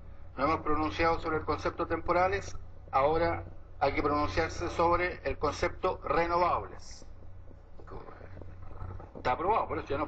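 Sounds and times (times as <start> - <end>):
faint background noise: 0.0 - 10.0
low steady hum: 0.0 - 10.0.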